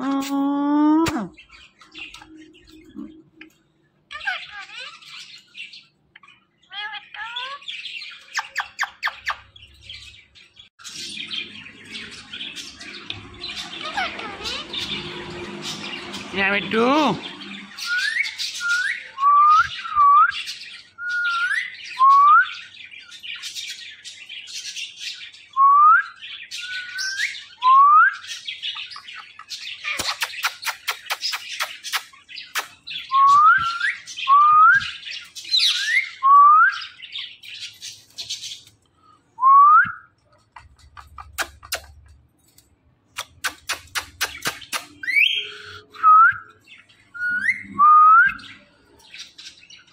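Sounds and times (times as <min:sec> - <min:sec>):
parakeets whistling: 0:01.3 - 0:23.9, 0:25.0 - 0:38.6, 0:43.2 - 0:49.9
harsh scratchy bird chatter: 0:10.8 - 0:18.6, 0:28.8 - 0:32.9, 0:40.4 - 0:45.4.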